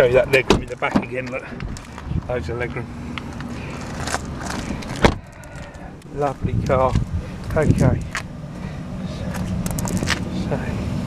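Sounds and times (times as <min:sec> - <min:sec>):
car door shutting thud: 0:00.3 - 0:01.1, 0:04.8 - 0:05.3.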